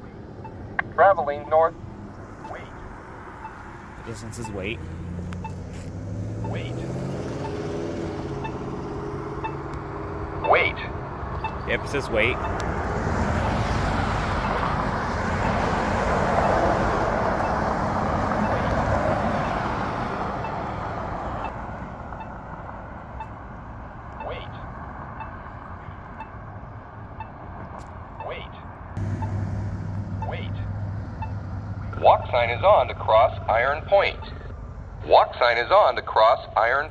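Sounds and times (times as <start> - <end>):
crosswalk locator tone ticking: 0.0 - 35.3
road traffic passing: 0.0 - 36.9.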